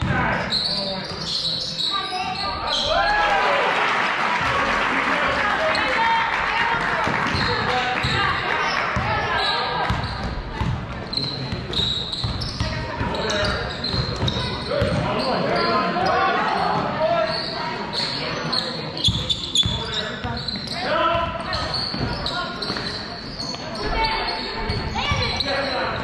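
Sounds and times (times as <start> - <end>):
spectators shouting and cheering: 2.4 - 10.1.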